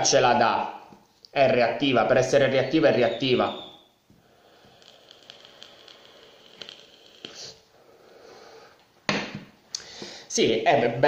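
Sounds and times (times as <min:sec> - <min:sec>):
sharp pops: 0:03.6 - 0:07.6
e-liquid crackling and sizzling on coil: 0:04.0 - 0:08.9.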